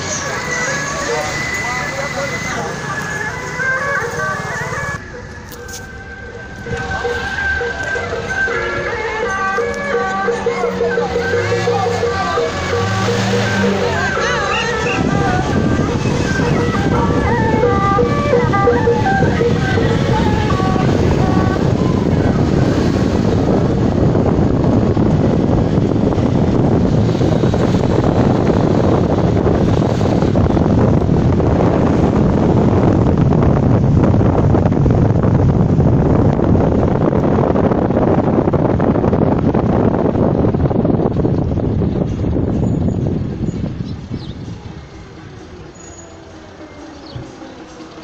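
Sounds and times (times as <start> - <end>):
car road noise: 0.0 - 48.0
wind rushing on microphone: 0.0 - 48.0.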